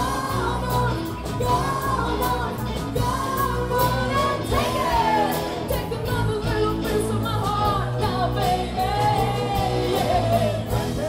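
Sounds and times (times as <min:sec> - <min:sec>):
live rock band playing: 0:00.0 - 0:11.0
person singing: 0:00.0 - 0:11.0.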